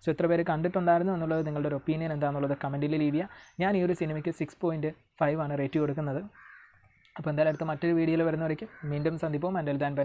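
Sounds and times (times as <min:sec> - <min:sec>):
man speaking: 0:00.0 - 0:06.3, 0:07.2 - 0:10.0
faint background hiss: 0:00.0 - 0:10.0.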